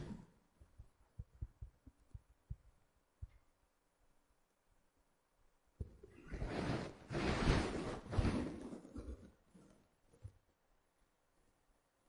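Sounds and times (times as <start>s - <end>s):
stylus tapping on tablet screen: 0.6s - 3.5s.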